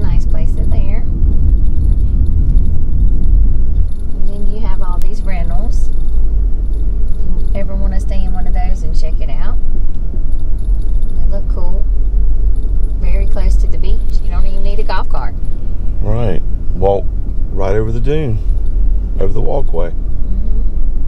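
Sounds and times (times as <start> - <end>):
indistinct voices: 0.0 - 1.2, 4.2 - 5.9, 7.1 - 9.6, 11.1 - 11.9, 13.0 - 18.5, 19.1 - 20.5
car road and engine rumble: 0.0 - 21.0.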